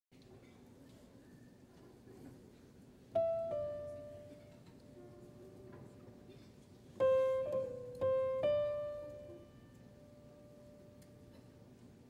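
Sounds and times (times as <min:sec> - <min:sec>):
piano single notes: 0:03.2 - 0:05.2, 0:07.0 - 0:11.6.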